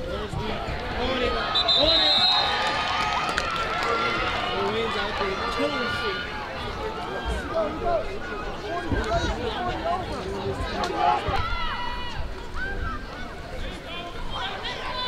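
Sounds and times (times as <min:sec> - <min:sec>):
crowd shouting and calling: 0:00.0 - 0:15.0
referee's whistle: 0:01.4 - 0:02.6.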